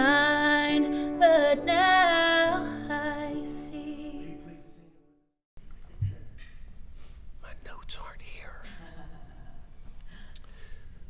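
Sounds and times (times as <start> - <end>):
person whispering: 7.4 - 8.7.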